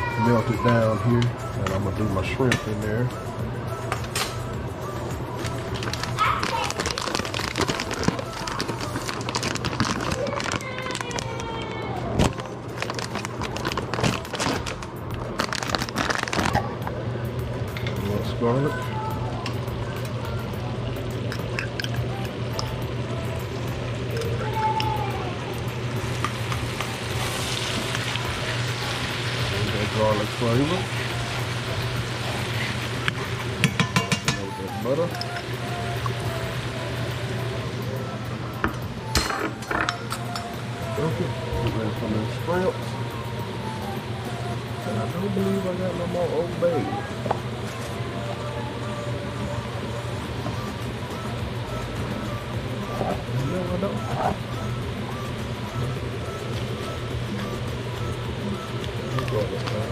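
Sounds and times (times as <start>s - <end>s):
steady low hum: 1.0s - 59.9s
utensils and pans clinking: 21.2s - 22.8s, 32.3s - 36.2s, 38.6s - 40.6s
butter sizzling in a skillet: 25.9s - 34.2s.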